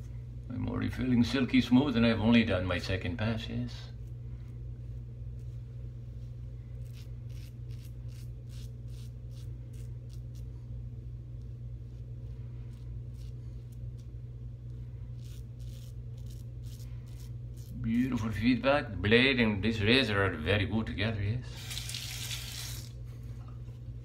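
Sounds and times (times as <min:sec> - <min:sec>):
steady low hum: 0:00.0 - 0:24.0
razor scraping stubble: 0:03.4 - 0:10.6, 0:11.3 - 0:18.4, 0:21.6 - 0:22.9.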